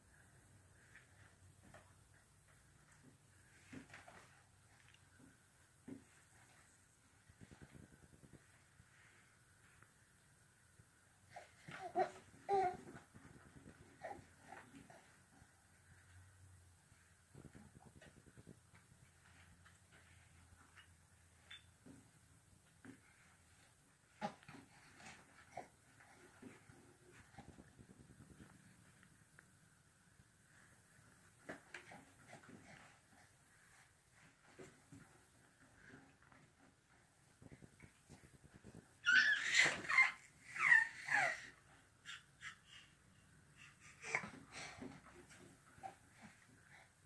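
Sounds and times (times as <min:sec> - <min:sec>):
baby vocal sounds: 0:39.0 - 0:45.0.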